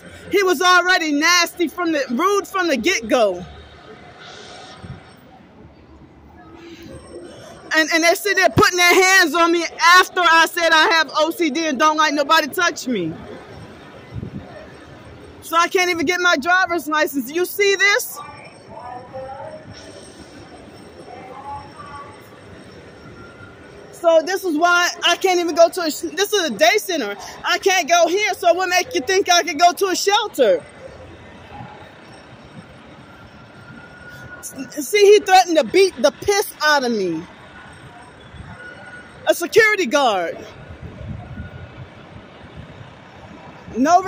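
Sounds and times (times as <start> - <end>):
city background noise: 0.0 - 44.0.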